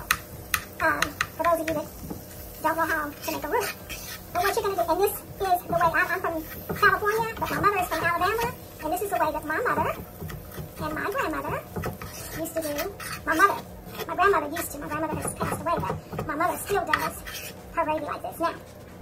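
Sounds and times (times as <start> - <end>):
person talking: 17.8 - 18.7.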